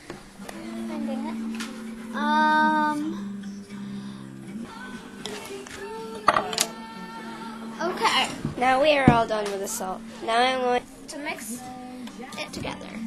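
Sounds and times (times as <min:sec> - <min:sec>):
steady low hum: 0:00.0 - 0:13.0
soft vocal sounds: 0:00.4 - 0:13.0
girl singing: 0:00.5 - 0:03.3, 0:04.6 - 0:13.0.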